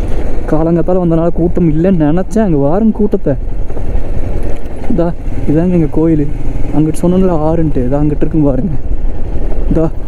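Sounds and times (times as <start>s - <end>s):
motorcycle engine running: 0.0s - 10.0s
wind rumble on microphone: 0.0s - 10.0s.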